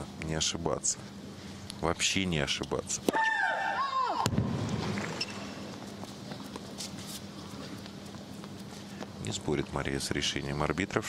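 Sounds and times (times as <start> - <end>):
player shrieking: 3.1 - 4.3.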